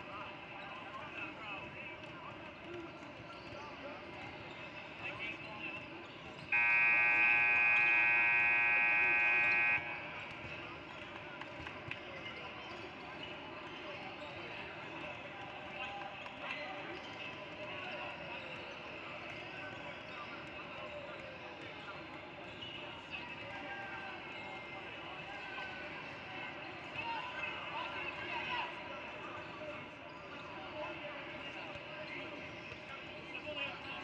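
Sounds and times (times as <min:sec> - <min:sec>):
gym chatter: 0:00.0 - 0:34.0
scoreboard horn blast: 0:06.6 - 0:10.2.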